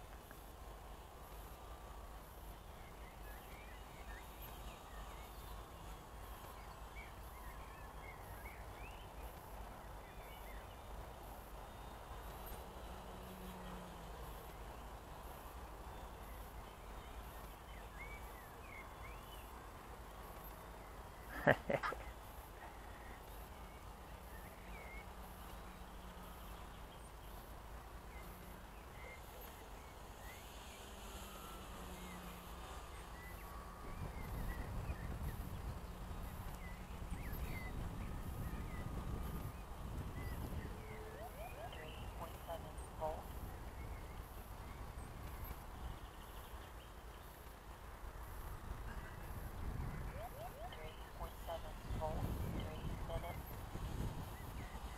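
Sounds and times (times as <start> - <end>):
low rumble and hiss: 0.0 - 54.9
bird chirps: 11.6 - 47.4, 48.9 - 53.6.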